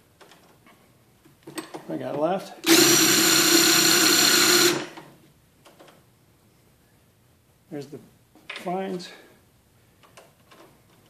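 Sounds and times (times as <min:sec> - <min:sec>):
power drill spinning: 0:02.6 - 0:05.0.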